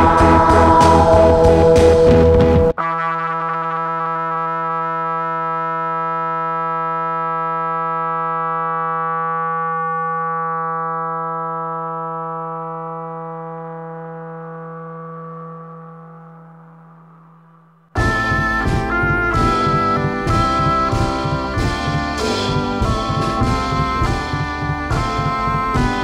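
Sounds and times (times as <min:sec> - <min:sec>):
sustained keyboard note: 0:00.0 - 0:03.6, 0:18.0 - 0:26.0.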